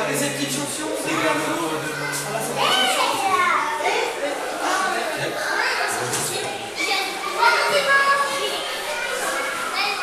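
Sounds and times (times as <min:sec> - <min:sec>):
children shouting in reverberant hall: 0:01.0 - 0:10.0.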